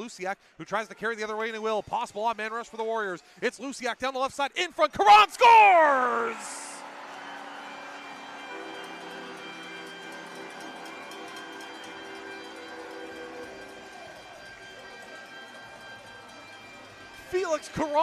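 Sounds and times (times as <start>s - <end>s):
crowd noise: 4.8s - 18.0s
arena horn and celebration music: 5.0s - 18.0s.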